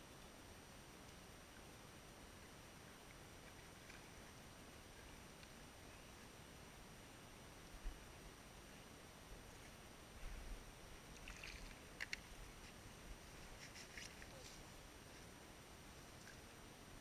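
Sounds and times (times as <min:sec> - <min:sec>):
water splashing at the edge: 0:11.0 - 0:12.3.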